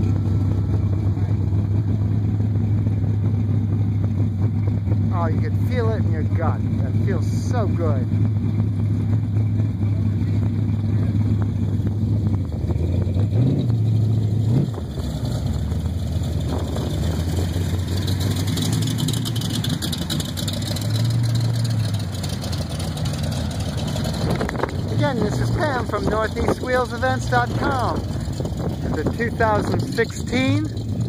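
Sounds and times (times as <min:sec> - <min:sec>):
deep engines idling and revving: 0:00.0 - 0:31.0.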